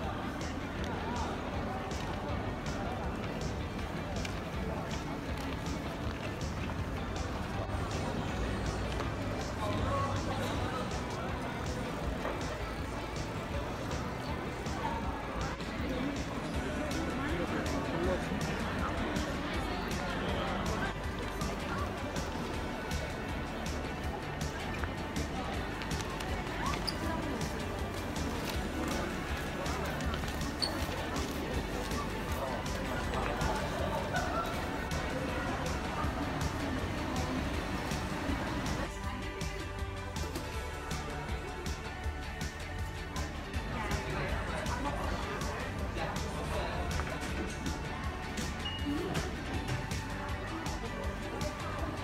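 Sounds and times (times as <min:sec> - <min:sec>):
busy street hum: 0:00.0 - 0:52.0
music: 0:00.0 - 0:52.0
voices of passers-by: 0:00.0 - 0:52.0.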